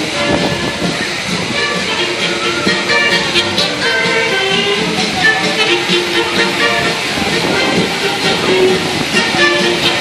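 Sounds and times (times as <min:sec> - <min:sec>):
amusement ride music: 0:00.0 - 0:10.0
hissing rushing noise: 0:00.0 - 0:10.0.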